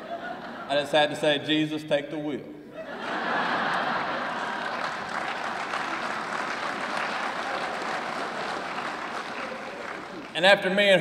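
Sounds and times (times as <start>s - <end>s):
audience applause: 3.6s - 10.4s.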